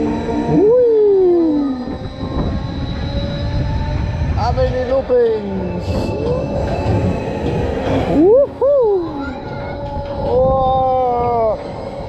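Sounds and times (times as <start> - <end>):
ride rumble and wind: 0.0 - 12.0.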